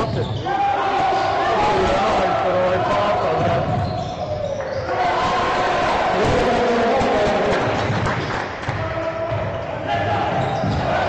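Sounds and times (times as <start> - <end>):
basketball bouncing on court: 3.2 - 4.9, 10.2 - 11.0.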